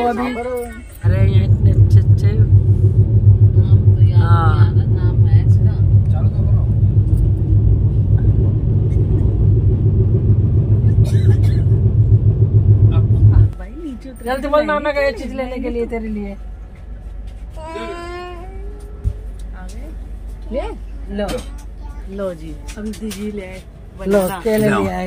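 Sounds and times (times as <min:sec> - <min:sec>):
train wheels rumbling on rails: 0:01.0 - 0:25.0.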